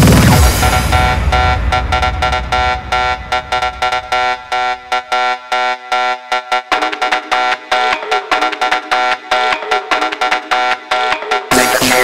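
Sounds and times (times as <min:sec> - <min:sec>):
kick drum and bass: 0:00.0 - 0:05.0
synthesizer chord stabs: 0:00.0 - 0:12.0.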